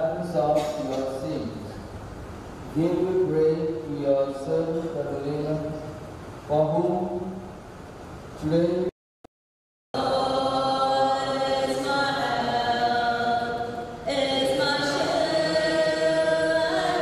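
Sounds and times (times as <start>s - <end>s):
woman singing a hymn: 10.0s - 17.0s.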